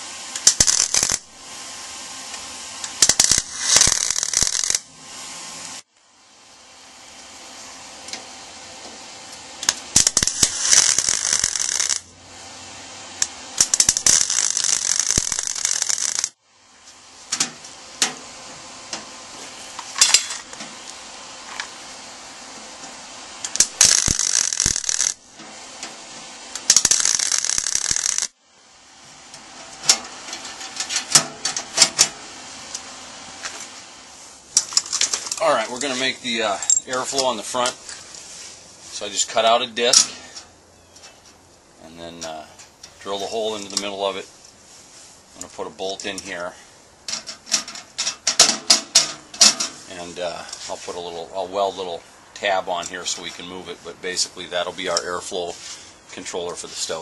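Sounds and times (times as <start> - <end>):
welding arc crackling: 0.0 - 5.9, 9.3 - 12.2, 13.2 - 16.4, 23.4 - 28.4
welding arc pops: 0.3 - 1.3, 2.3 - 4.9, 9.6 - 12.1, 13.2 - 16.4, 23.4 - 26.0, 26.6 - 28.4.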